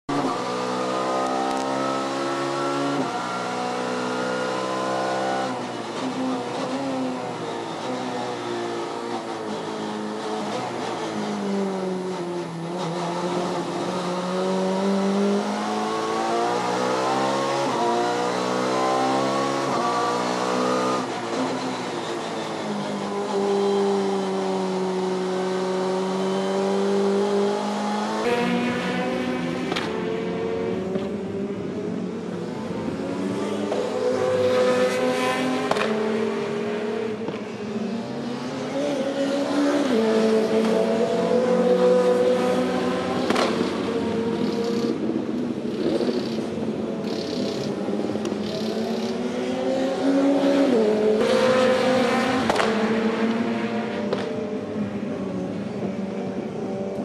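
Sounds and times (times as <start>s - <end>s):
race car engine revving: 9.1s - 22.3s, 32.7s - 54.4s.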